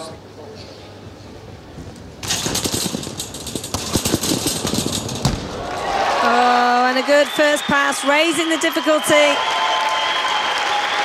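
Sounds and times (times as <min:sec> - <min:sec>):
thuds on a trampoline: 0:02.2 - 0:05.9.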